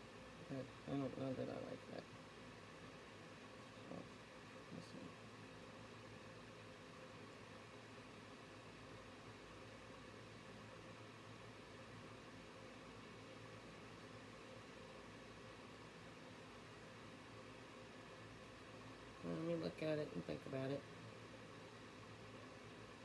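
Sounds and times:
faint room hiss: 0:00.0 - 0:23.0.

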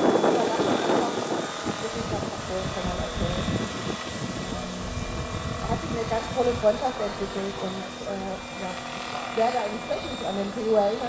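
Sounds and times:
person talking: 0:00.0 - 0:03.7, 0:04.3 - 0:04.9, 0:05.6 - 0:11.0
model helicopter rotor whine: 0:00.0 - 0:11.0.

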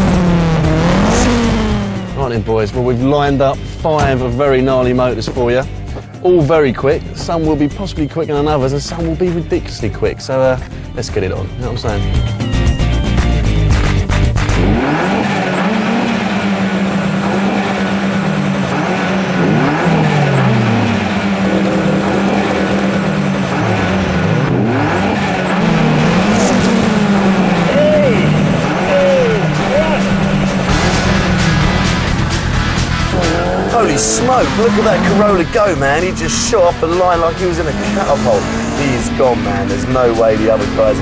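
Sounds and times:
car engines revving: 0:00.0 - 0:09.9, 0:10.6 - 0:41.0.

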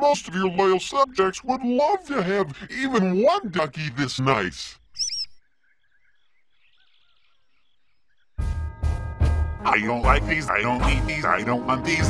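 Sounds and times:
faint chirping: 0:00.0 - 0:09.0
rubber duck squeaking: 0:05.0 - 0:05.4.

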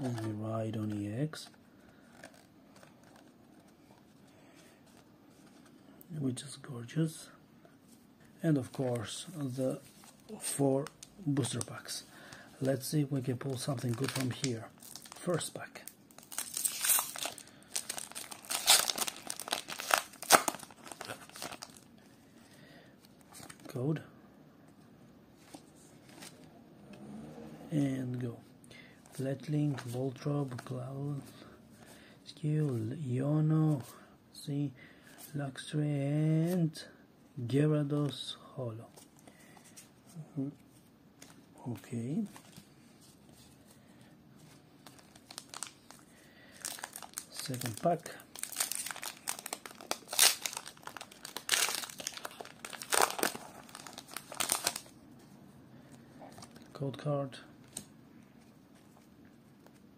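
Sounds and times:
foil wrapper crinkling and tearing: 0:13.7 - 0:15.4, 0:16.1 - 0:21.9, 0:44.8 - 0:46.0, 0:46.6 - 0:55.0
foil pack tearing: 0:48.4 - 0:54.8.

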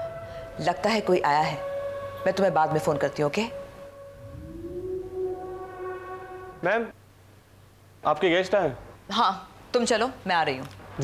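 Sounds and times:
synthesized tone rising: 0:01.6 - 0:06.9
low rumble: 0:03.4 - 0:06.6.

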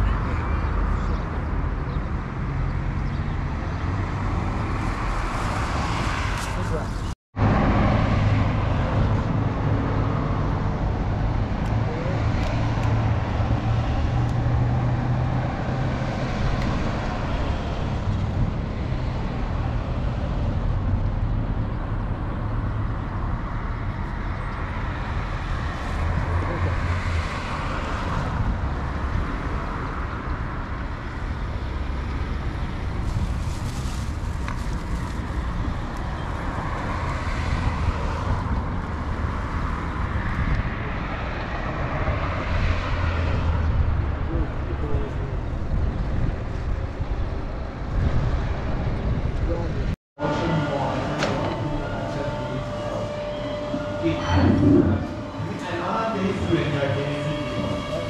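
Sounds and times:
road traffic rumble: 0:00.0 - 0:58.0.

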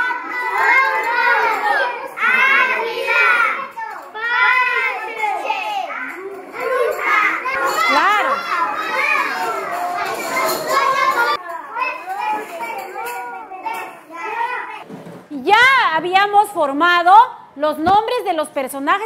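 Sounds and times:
young children chattering: 0:00.0 - 0:14.8.

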